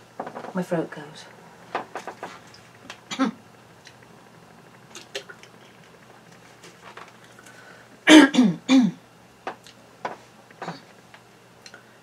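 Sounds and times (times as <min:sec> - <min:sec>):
woman coughing: 0:03.1 - 0:03.4, 0:08.1 - 0:09.0.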